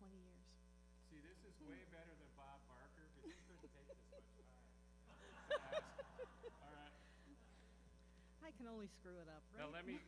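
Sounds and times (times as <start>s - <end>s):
bursts of laughter: 5.1s - 7.2s.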